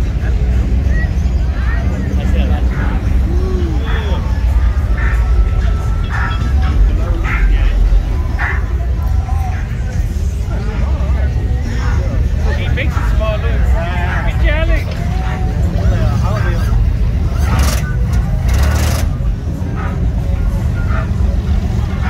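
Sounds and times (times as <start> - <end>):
bystanders' voices: 0.0 - 22.0
car engines idling and cruising: 0.0 - 22.0.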